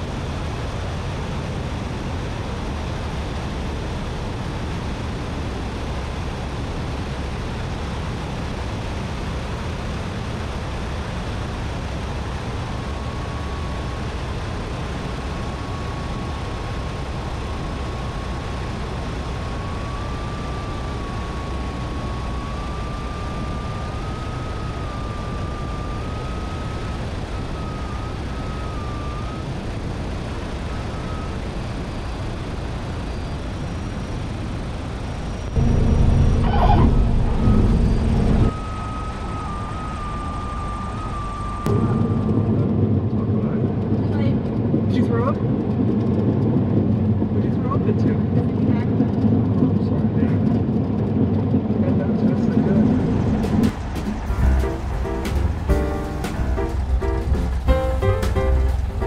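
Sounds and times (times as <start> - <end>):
aircraft cabin engine noise: 0.0 - 59.0
faint wavering high tone: 12.8 - 32.2, 35.4 - 42.9, 53.7 - 59.0
louder dull noise: 53.4 - 59.0.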